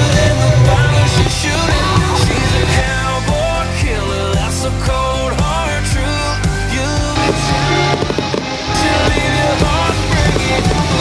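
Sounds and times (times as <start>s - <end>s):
fireworks crackling and popping: 0.0s - 3.8s, 6.4s - 11.0s
loud rock music: 0.0s - 11.0s.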